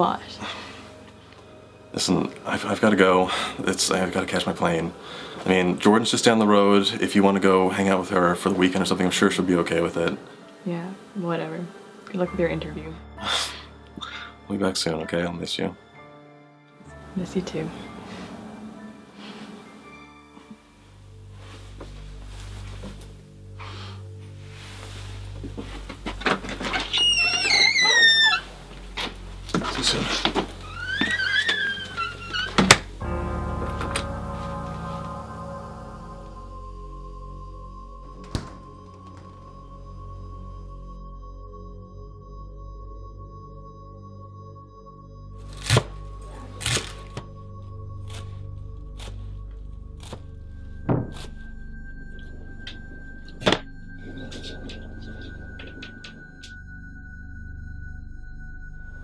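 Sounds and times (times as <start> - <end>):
low music drone: 0.0 - 59.0
door hinges squealing: 26.1 - 33.1, 52.2 - 56.6
high steady tone: 33.0 - 42.1
door closing thud: 38.2 - 38.7.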